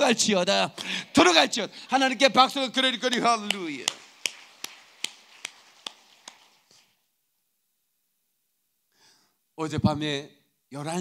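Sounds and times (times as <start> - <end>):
man clapping hands: 3.1 - 6.8.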